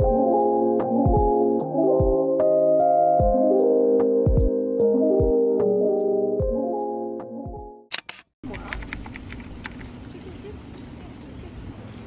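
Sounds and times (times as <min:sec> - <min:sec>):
background music with a beat: 0:00.0 - 0:07.8
sharp clicks: 0:07.9 - 0:10.0.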